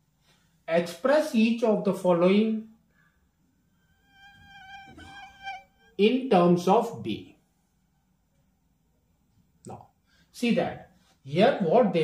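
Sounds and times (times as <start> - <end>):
small insect buzzing whine: 3.8 - 6.0.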